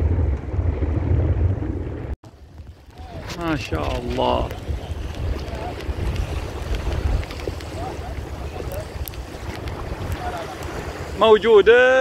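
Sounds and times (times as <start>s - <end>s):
shallow seawater washing: 0.0s - 12.0s
wind buffeting microphone: 0.0s - 12.0s.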